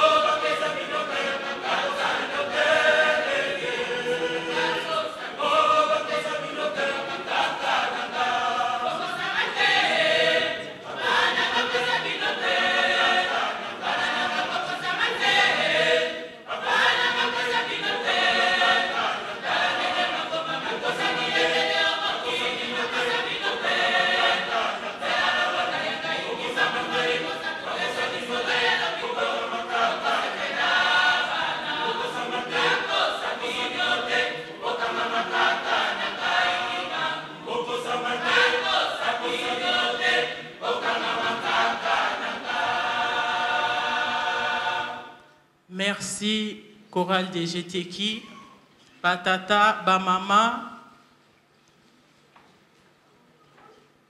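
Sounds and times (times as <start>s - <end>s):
choir singing a hymn unaccompanied: 0.0s - 45.4s.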